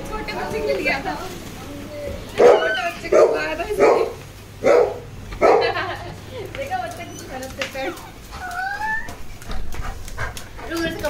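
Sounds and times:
dog whining: 0:01.8 - 0:03.4, 0:08.3 - 0:09.5.

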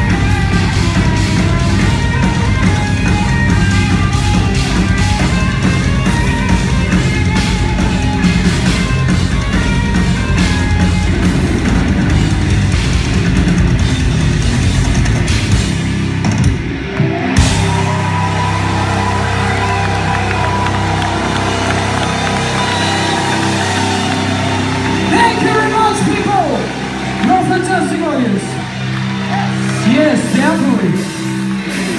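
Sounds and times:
heavy metal band playing live: 0:00.0 - 0:31.9.

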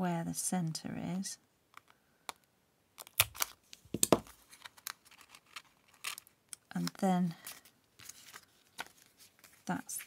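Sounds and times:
paper handling: 0:03.2 - 0:10.0.

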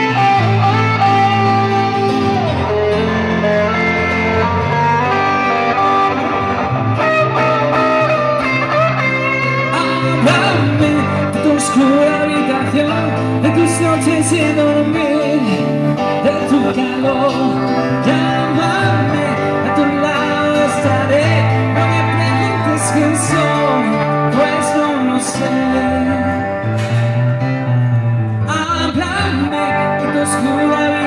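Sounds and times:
guitar: 0:00.0 - 0:31.0
low bass notes: 0:00.0 - 0:31.0
pop-rock over speakers: 0:00.0 - 0:31.0.

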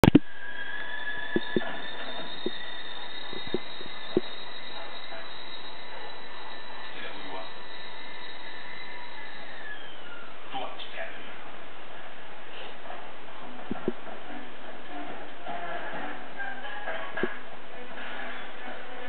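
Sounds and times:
high electronic whine: 0:00.0 - 0:10.8, 0:13.1 - 0:18.6
recording hiss: 0:00.0 - 0:19.0.

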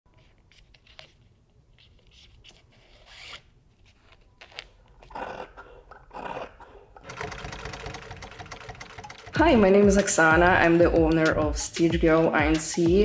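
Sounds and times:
sewing machine stitching: 0:07.0 - 0:09.8.

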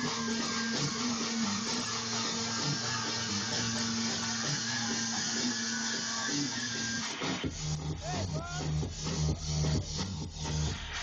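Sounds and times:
electronic dance music: 0:00.0 - 0:11.0
kick drum and bass: 0:07.1 - 0:11.0.

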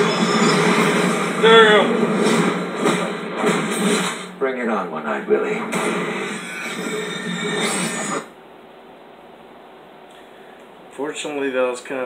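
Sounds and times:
movie trailer soundtrack: 0:00.0 - 0:08.4
faint room hiss: 0:08.3 - 0:12.0.

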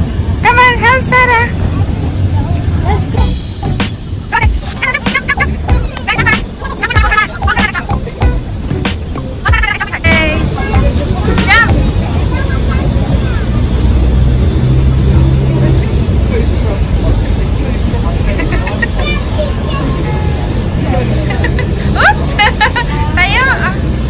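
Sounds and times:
steady low rumble: 0:01.5 - 0:21.8
children shouting and squealing: 0:02.4 - 0:14.2, 0:18.4 - 0:23.2.

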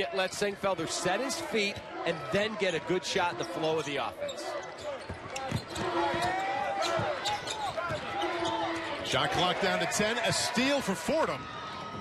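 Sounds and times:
sneakers squeaking: 0:03.4 - 0:09.1.

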